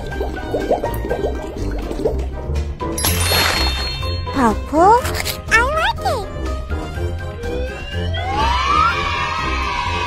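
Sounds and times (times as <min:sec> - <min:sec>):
children's music with low beat: 0:04.1 - 0:09.2.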